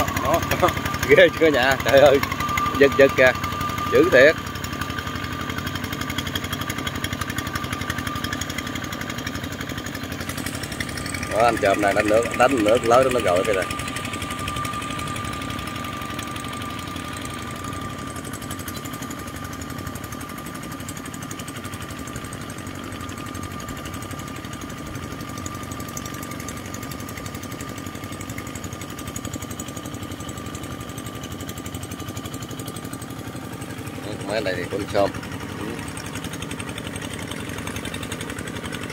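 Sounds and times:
diesel tractor engine running: 0:00.0 - 0:38.9
steady high whine: 0:00.0 - 0:38.9.

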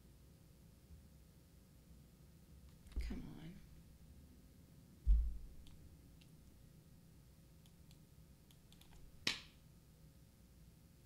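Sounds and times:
faint steady hum: 0:00.0 - 0:11.0
computer clicks: 0:07.6 - 0:09.0.

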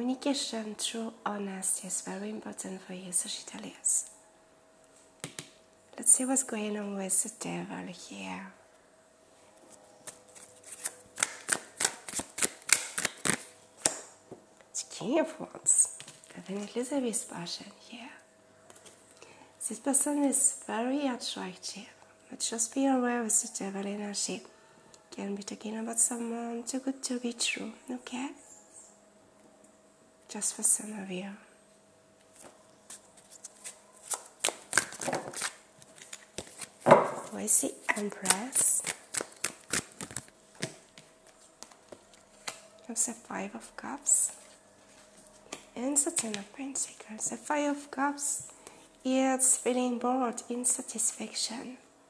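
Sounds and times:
cards shuffled by hand: 0:10.0 - 0:14.0, 0:32.3 - 0:36.9, 0:37.9 - 0:42.6.

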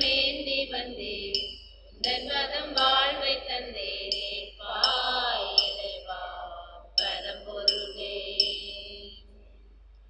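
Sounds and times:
hymn singing with instruments: 0:00.0 - 0:09.5.

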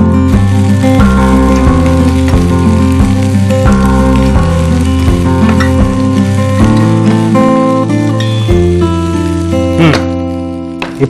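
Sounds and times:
background music: 0:00.0 - 0:11.0
vegetables sizzling in a pan: 0:00.0 - 0:11.0.

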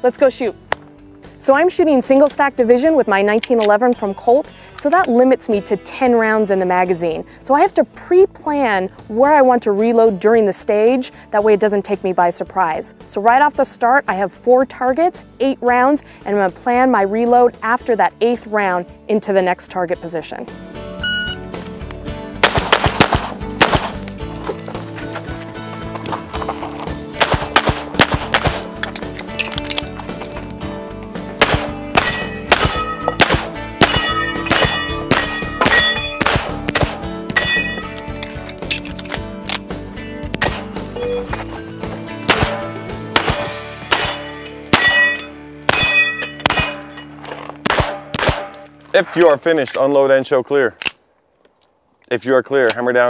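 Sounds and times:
background music: 0:00.0 - 0:50.9
pistol shots: 0:22.4 - 0:24.1, 0:27.2 - 0:28.8, 0:31.4 - 0:37.9, 0:42.2 - 0:46.9, 0:47.6 - 0:48.6
steel plates ringing when hit: 0:32.0 - 0:33.2, 0:33.8 - 0:36.2, 0:37.4 - 0:38.0, 0:40.4 - 0:41.4, 0:42.6 - 0:47.2.

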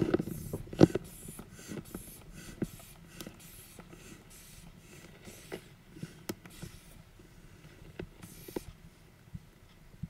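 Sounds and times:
soft hiss of air: 0:00.0 - 0:10.0.

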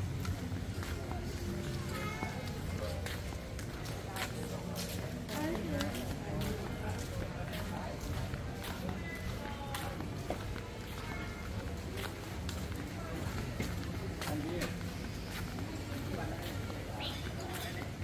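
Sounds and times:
faint background music: 0:00.0 - 0:18.0
flip-flop footsteps: 0:00.0 - 0:18.0
people talking: 0:00.0 - 0:18.0.

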